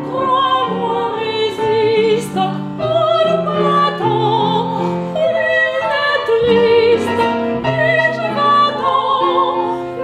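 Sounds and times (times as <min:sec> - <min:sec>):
piano: 0:00.0 - 0:10.0
woman singing with vibrato: 0:00.0 - 0:10.0.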